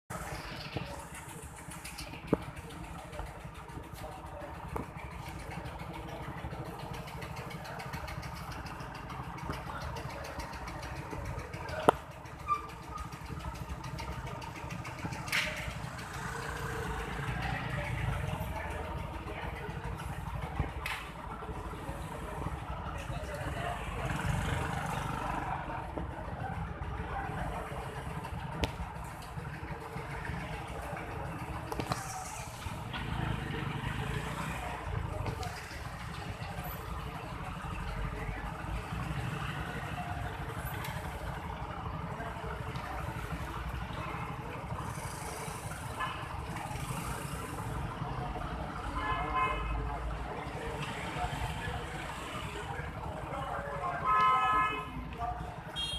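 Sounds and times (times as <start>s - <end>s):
low street rumble: 0.1s - 55.9s
murmur of crowd voices: 0.1s - 55.9s.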